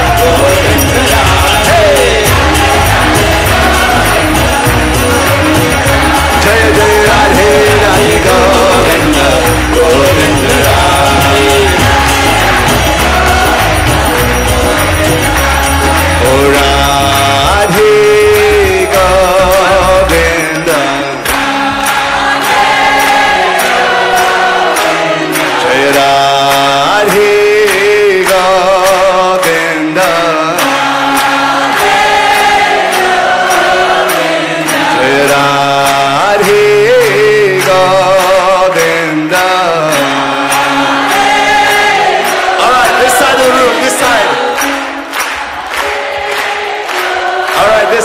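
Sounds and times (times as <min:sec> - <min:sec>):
percussion beat and bass: 0:00.0 - 0:24.2
devotional song with chorus: 0:00.0 - 0:48.0.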